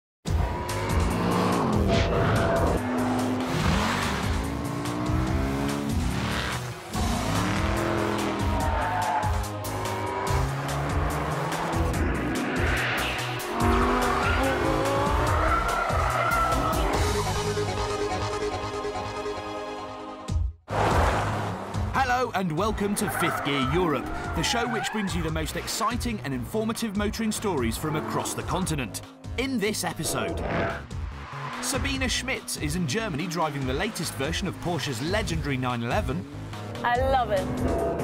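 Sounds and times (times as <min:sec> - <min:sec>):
car engines revving: 0:00.3 - 0:17.9, 0:22.5 - 0:38.0
music track: 0:00.4 - 0:20.1
tyres squealing: 0:08.2 - 0:10.6, 0:13.5 - 0:17.0, 0:22.8 - 0:25.5.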